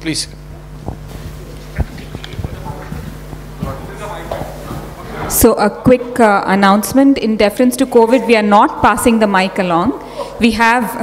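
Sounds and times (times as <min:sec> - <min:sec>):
low steady hum: 0:00.0 - 0:11.0
footsteps on stage: 0:00.7 - 0:05.4
light knocks and thumps: 0:00.8 - 0:05.0.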